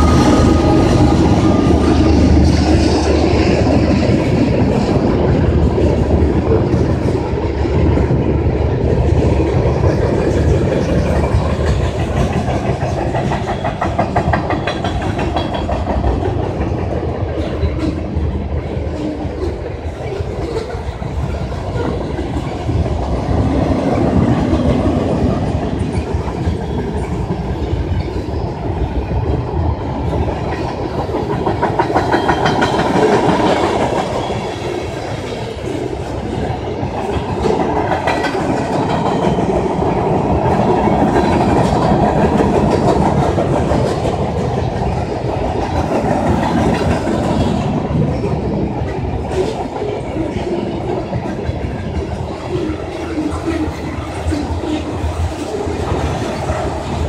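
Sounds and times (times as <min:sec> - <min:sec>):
clickety-clack over rail joints: 0:00.0 - 0:57.0
freight train wheels rumbling: 0:00.0 - 0:57.0.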